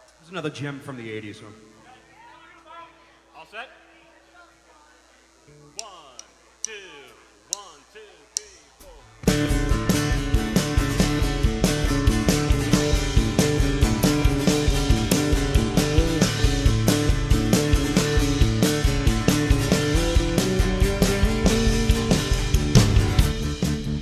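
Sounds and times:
man counting: 0:05.6 - 0:09.2
sharp count-in clicks: 0:05.7 - 0:09.0
drum kit steady beat: 0:05.8 - 0:24.0
fretless bass: 0:08.8 - 0:24.0
acoustic guitar: 0:09.2 - 0:24.0.

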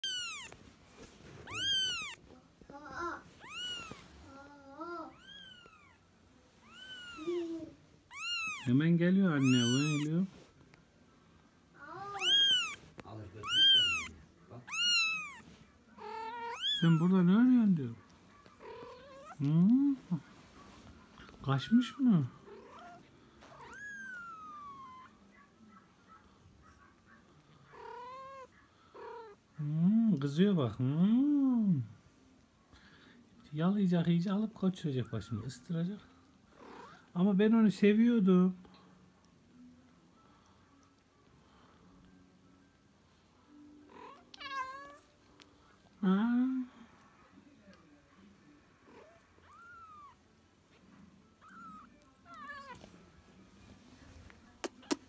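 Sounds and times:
kitten mewing: 0:00.0 - 0:00.6, 0:01.4 - 0:02.2, 0:03.4 - 0:06.0, 0:06.6 - 0:08.8, 0:09.4 - 0:10.1, 0:11.8 - 0:17.1, 0:21.6 - 0:25.1, 0:48.9 - 0:50.2.

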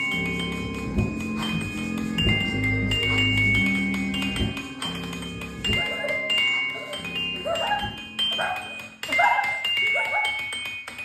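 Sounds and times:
glockenspiel: 0:00.0 - 0:11.0.

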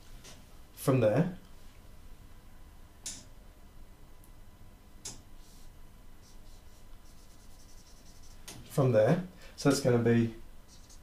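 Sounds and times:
marker drawing on whiteboard: 0:05.4 - 0:08.6, 0:10.7 - 0:11.0.

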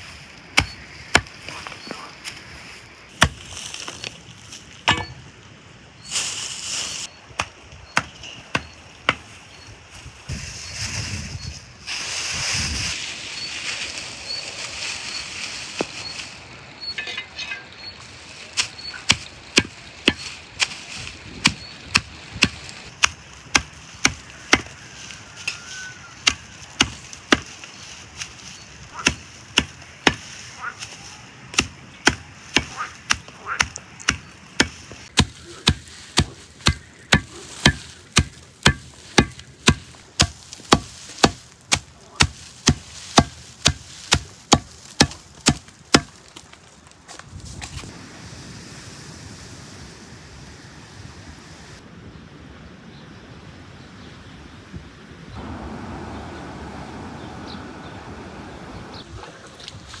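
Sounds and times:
blade chopping straw on wood: 0:00.6 - 0:01.4, 0:03.1 - 0:04.1, 0:18.6 - 0:20.8, 0:21.4 - 0:28.3, 0:28.9 - 0:30.9, 0:31.5 - 0:46.4.

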